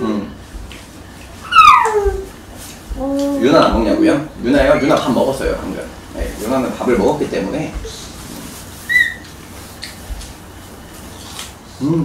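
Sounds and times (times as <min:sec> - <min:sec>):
dog whining: 0:01.4 - 0:02.4, 0:08.8 - 0:09.3.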